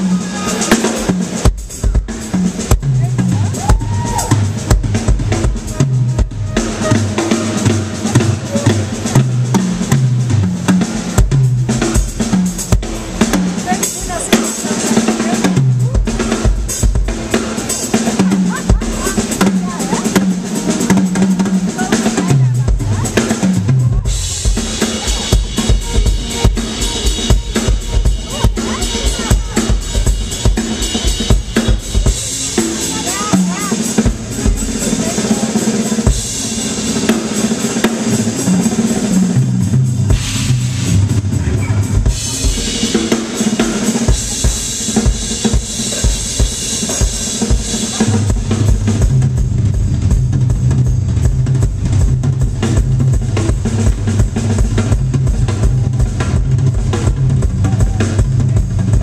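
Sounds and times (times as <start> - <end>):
jazz-funk band playing: 0.0 - 59.0.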